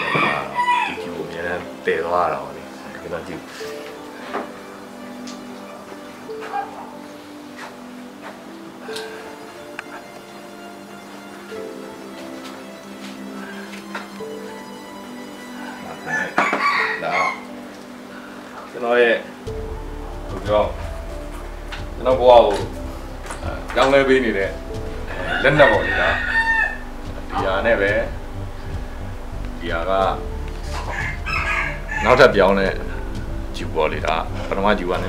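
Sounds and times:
harsh crowing call: 0:00.0 - 0:01.2, 0:13.2 - 0:17.7, 0:25.0 - 0:27.0, 0:30.7 - 0:33.0
background music: 0:00.0 - 0:35.0.

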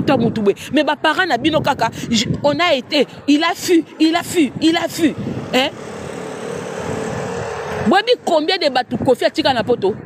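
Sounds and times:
person speaking: 0:00.0 - 0:06.0
vehicle passing: 0:03.0 - 0:09.1.

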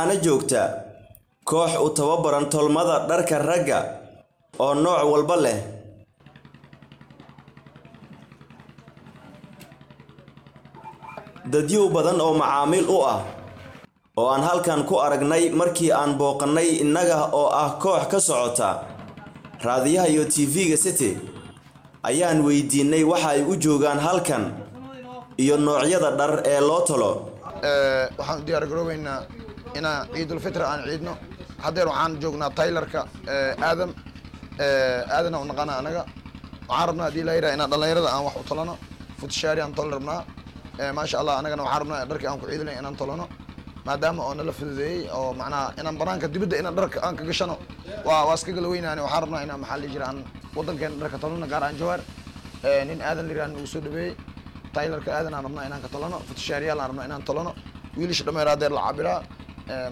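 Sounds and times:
man speaking: 0:00.0 - 0:00.8, 0:01.5 - 0:04.0, 0:04.6 - 0:05.8, 0:10.8 - 0:13.5, 0:14.2 - 0:19.0, 0:19.6 - 0:33.9, 0:46.1 - 0:52.0
low pulsing engine hum: 0:01.9 - 0:59.9.

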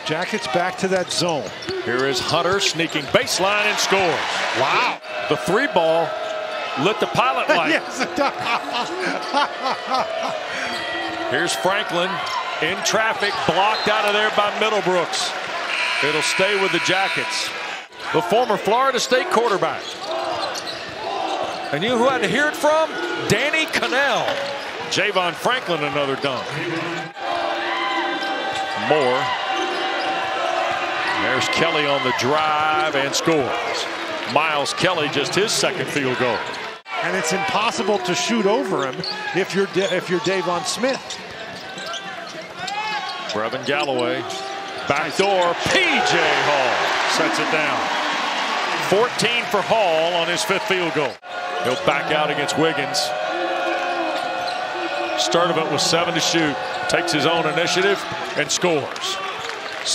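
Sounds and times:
arena crowd noise: 0:00.0 - 0:59.9
crowd murmur: 0:07.4 - 0:11.2.

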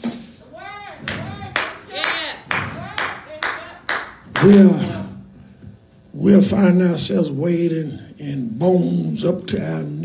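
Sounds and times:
rhythmic hand-clapping: 0:01.0 - 0:04.7.

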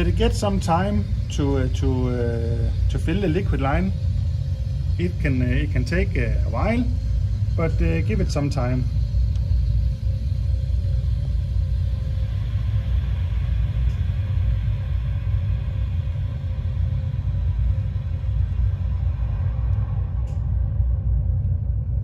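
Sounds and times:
refrigerant hissing through valve: 0:00.0 - 0:09.2
low rumble: 0:00.0 - 0:22.0.

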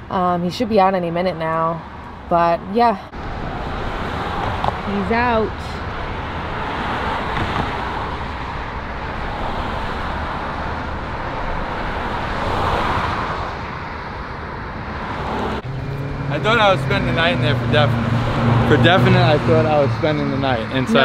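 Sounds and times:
car passing: 0:00.0 - 0:21.0
road traffic noise: 0:00.0 - 0:21.0.

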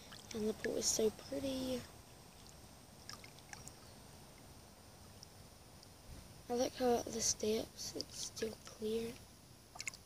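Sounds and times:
pool water lapping: 0:02.3 - 0:03.8, 0:09.7 - 0:10.0
small water splashes: 0:02.3 - 0:03.8, 0:09.7 - 0:10.0.

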